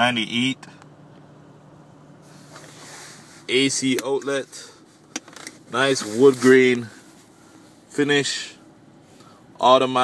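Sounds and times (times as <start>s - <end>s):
air-conditioning blower hissing: 0.0s - 10.0s
car engine idling: 0.0s - 10.0s.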